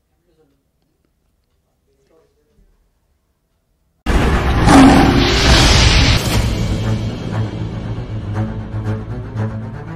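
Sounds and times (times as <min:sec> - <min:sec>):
loud sound effect with deep rumble: 0:04.1 - 0:08.8.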